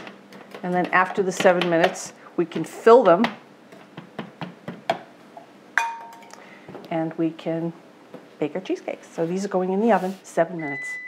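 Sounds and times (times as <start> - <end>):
clink in glass bowl: 5.8 - 6.3.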